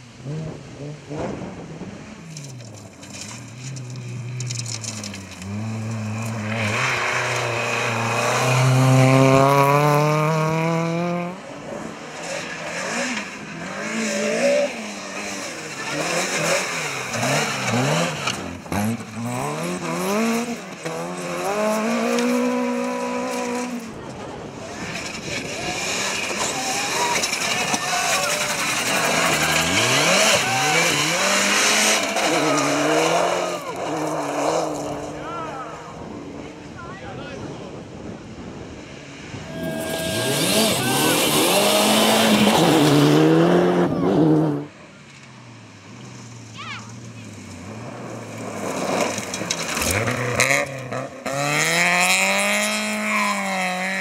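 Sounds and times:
rally car engines at full throttle: 0.0s - 54.0s
tyres spraying gravel: 24.6s - 35.1s, 39.5s - 43.0s.

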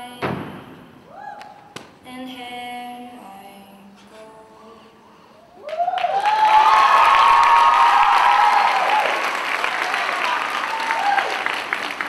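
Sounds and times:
high-pitched whooping cheers: 1.1s - 1.6s, 5.6s - 11.5s
audience applause: 5.6s - 12.0s.

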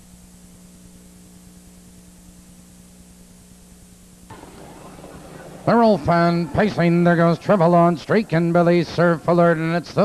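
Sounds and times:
electrical hum: 0.0s - 10.0s
recording hiss: 0.0s - 10.0s.

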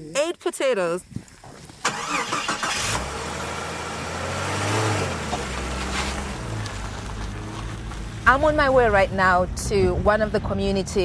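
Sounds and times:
road noise inside car: 1.8s - 10.1s
low engine hum: 2.0s - 10.4s.

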